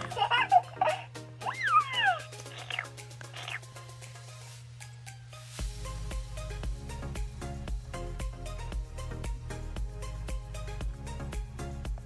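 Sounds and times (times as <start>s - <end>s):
background music: 0.0s - 12.0s
doll baby voice squeaks: 1.4s - 3.6s.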